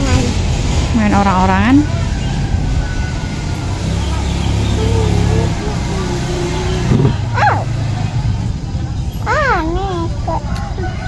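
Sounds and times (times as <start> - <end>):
vehicle engine passing: 0.0 - 11.0.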